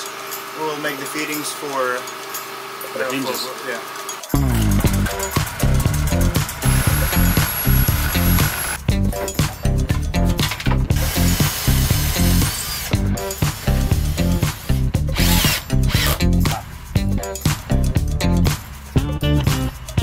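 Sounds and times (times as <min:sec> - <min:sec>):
background music with beat: 0:04.2 - 0:20.0
cordless drill whirring: 0:06.6 - 0:08.8, 0:11.4 - 0:12.9, 0:15.2 - 0:16.2.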